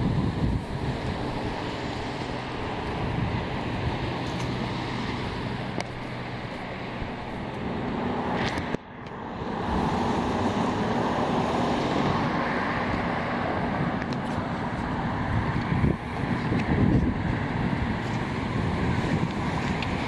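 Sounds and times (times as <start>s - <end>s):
cars passing on road: 0.0s - 20.0s
low engine hum: 0.0s - 20.0s.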